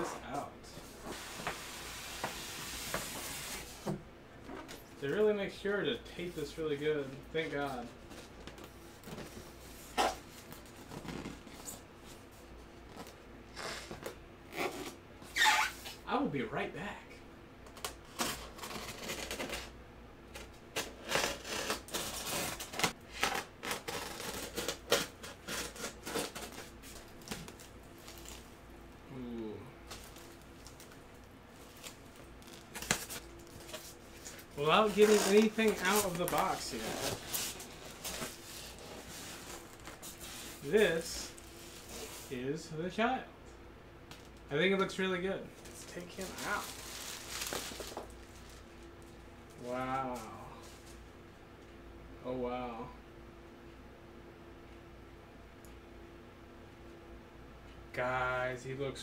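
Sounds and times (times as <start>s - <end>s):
packing tape pulled off foam: 17.7s - 28.5s, 31.6s - 40.8s, 45.9s - 48.6s
plastic bag crinkling: 29.9s - 40.7s, 45.6s - 48.6s.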